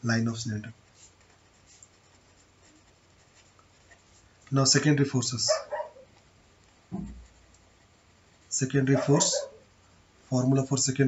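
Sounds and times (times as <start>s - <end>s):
marker scratching on paper: 0.8s - 4.8s, 5.4s - 9.6s.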